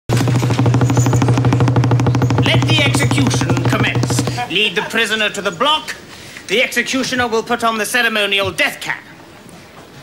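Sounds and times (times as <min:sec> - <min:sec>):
large drum roll: 0:00.1 - 0:04.7.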